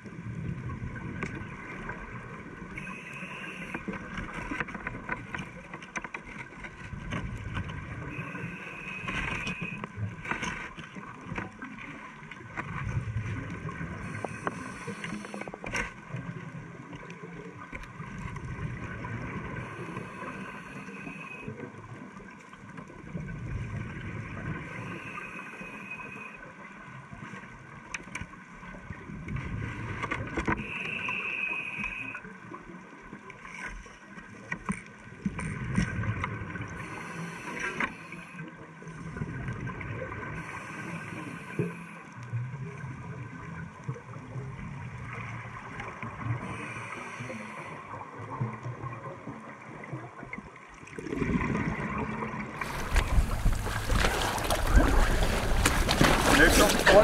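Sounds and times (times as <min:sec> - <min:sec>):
exhaled bubbles rumbling underwater: 0:00.0 - 0:25.3, 0:26.0 - 0:30.7, 0:31.9 - 0:57.0.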